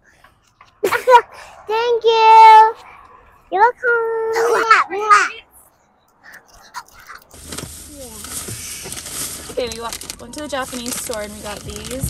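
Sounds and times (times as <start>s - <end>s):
car cabin hiss: 7.4s - 9.7s.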